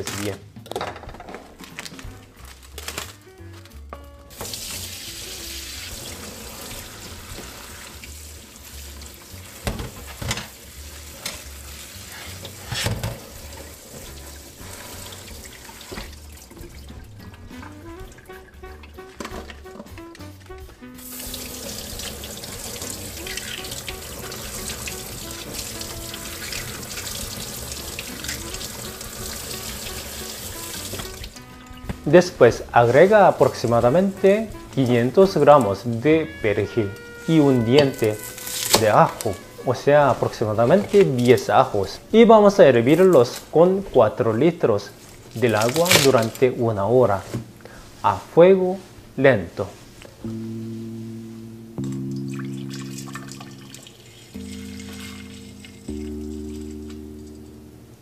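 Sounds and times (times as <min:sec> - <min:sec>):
background music: 0:00.0 - 0:47.2, 0:48.0 - 0:58.0.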